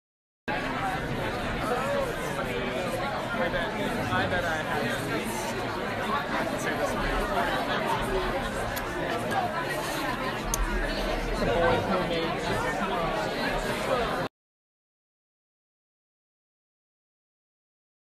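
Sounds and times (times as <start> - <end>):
crowd babble: 0.5 - 14.3.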